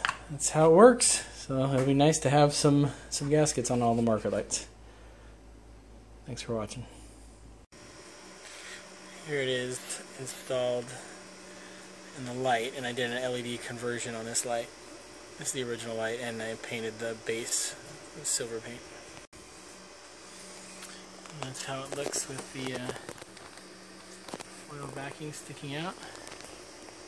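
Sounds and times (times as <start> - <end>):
low room hum: 0.0 - 27.0.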